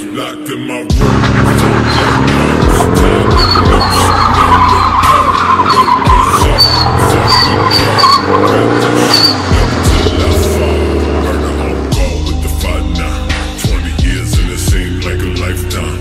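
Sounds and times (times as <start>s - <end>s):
music: 0.0s - 16.0s
tire squealing: 1.0s - 12.4s
engine at high revs: 1.0s - 13.5s.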